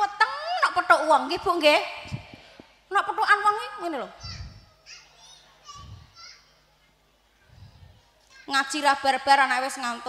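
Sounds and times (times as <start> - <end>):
children chattering and calling: 4.2 - 8.8.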